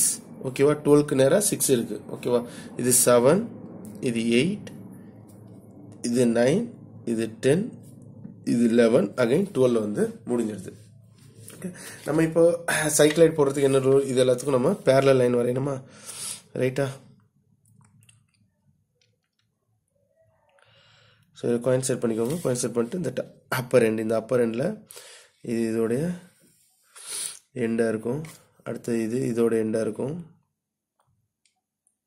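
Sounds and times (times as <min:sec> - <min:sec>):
person speaking: 0:06.0 - 0:17.0, 0:21.4 - 0:24.6.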